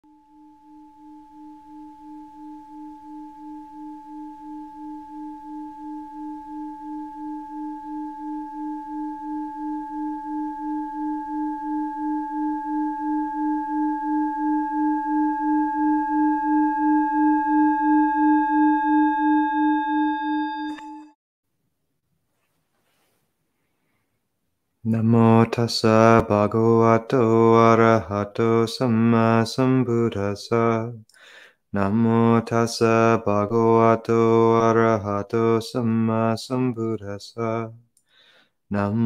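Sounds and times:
singing bowl pulsing hum: 0.0s - 21.2s.

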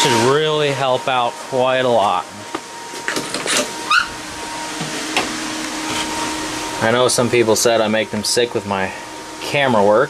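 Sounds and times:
electric cooling fan running: 0.0s - 10.0s.

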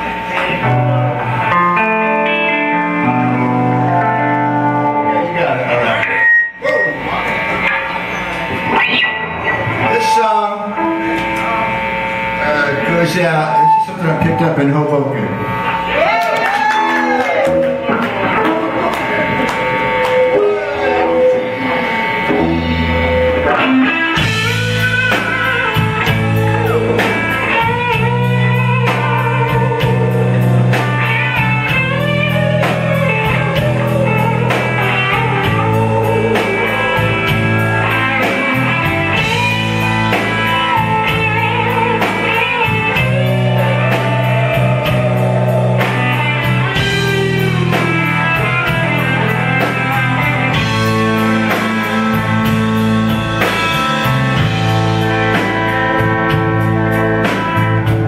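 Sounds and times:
electric guitar lead: 0.0s - 58.0s
rhythm guitar: 0.0s - 58.0s
sustained bass: 0.0s - 58.0s
drums with cymbal beat: 22.2s - 58.0s.

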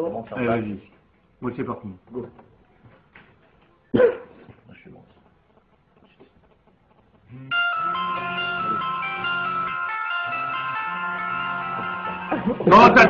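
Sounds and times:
mobile phones ringing: 7.3s - 13.0s.

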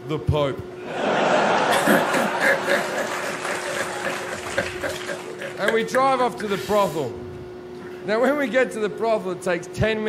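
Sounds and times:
audience applauding: 1.2s - 5.7s.

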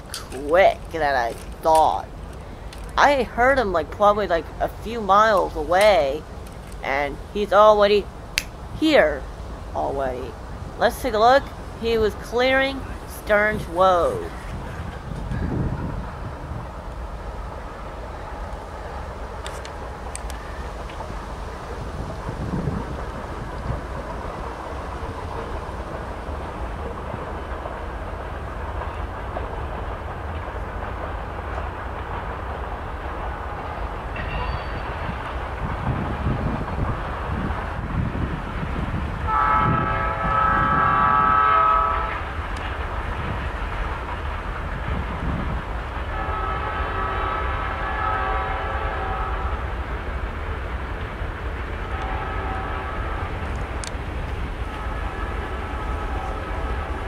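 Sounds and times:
locomotives rumbling past: 0.0s - 57.0s
wind on microphone: 11.5s - 17.3s, 20.7s - 27.4s, 34.8s - 42.3s, 42.9s - 49.2s
locomotive air horn blasts: 39.3s - 42.2s, 46.2s - 49.5s, 51.9s - 53.1s, 54.8s - 56.6s.

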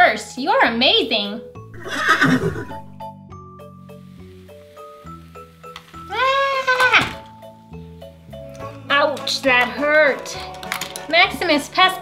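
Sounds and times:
light background music: 0.0s - 12.0s
horse whinny: 1.7s - 2.9s, 6.1s - 7.2s.

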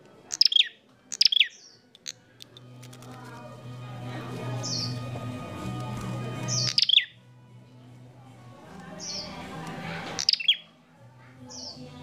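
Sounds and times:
songbird chirping: 0.0s - 12.0s.

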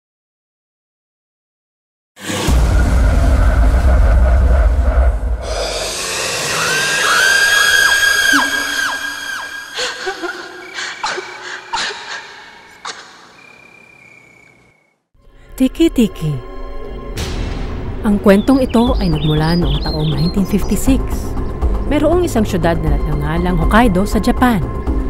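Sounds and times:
heavy low rumble: 2.3s - 6.7s
high eerie ringing tones: 5.4s - 13.8s
sharp hits: 17.1s - 18.1s.

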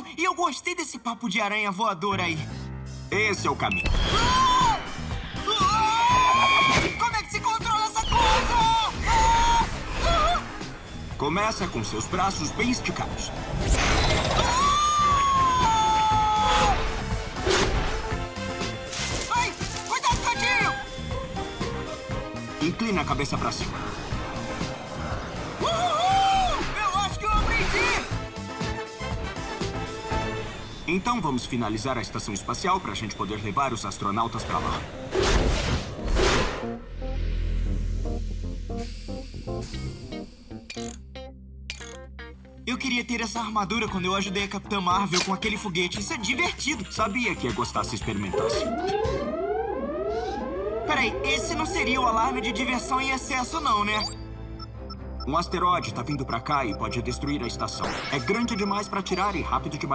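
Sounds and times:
background music: 0.0s - 59.9s
cartoon crash: 3.8s - 4.8s, 13.6s - 15.7s
low rumble: 36.7s - 40.7s.

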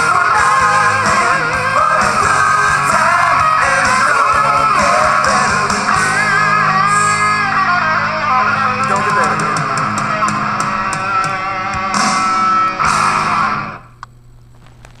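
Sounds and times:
rock band playing: 0.0s - 13.9s.

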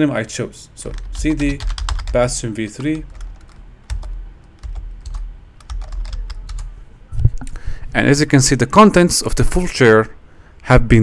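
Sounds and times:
faint low hum: 0.0s - 11.0s
keyboard typing: 0.8s - 6.8s.

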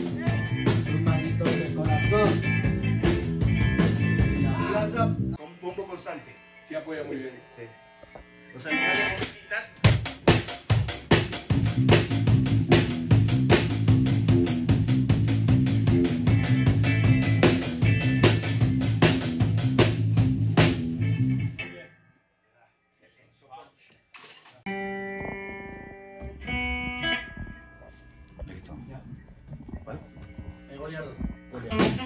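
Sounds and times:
drum kit fast beat: 0.0s - 4.6s, 9.2s - 21.0s, 31.7s - 32.0s
bass line: 0.0s - 5.4s, 11.4s - 21.6s, 24.8s - 32.0s
electric guitar sustained chords: 24.7s - 32.0s.

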